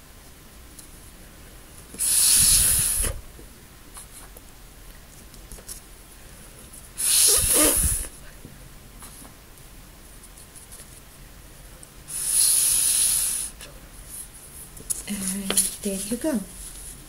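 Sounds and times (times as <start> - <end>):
breath blown through straw: 2.0 - 3.2, 7.0 - 8.2, 12.1 - 13.6.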